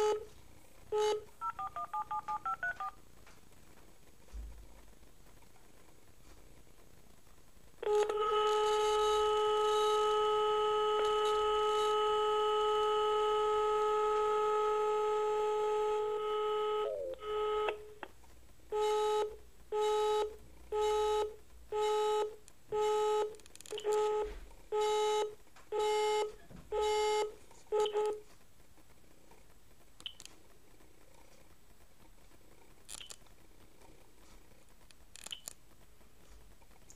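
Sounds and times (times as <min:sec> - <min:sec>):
long steady phone tone: 0:00.0 - 0:00.3, 0:00.9 - 0:03.0, 0:07.8 - 0:18.0, 0:18.7 - 0:28.2.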